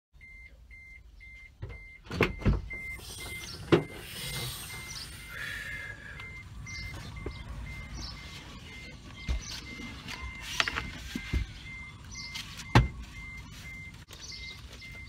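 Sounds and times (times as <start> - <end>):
electronic beeper high beeps: 0.2 - 10.5.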